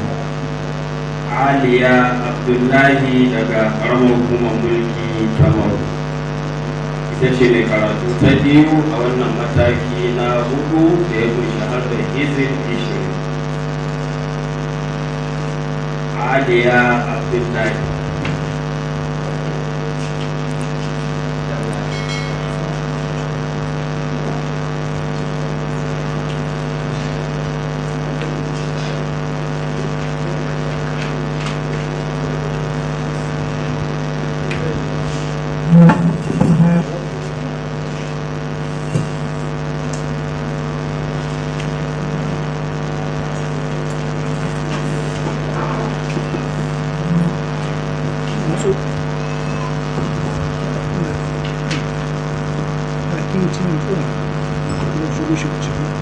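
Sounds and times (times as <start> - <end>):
steady electrical hum: 0.0 - 56.0.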